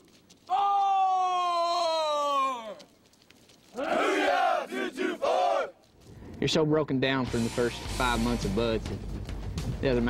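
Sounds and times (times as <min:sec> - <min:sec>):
men chanting marching cadence: 0:03.7 - 0:05.8.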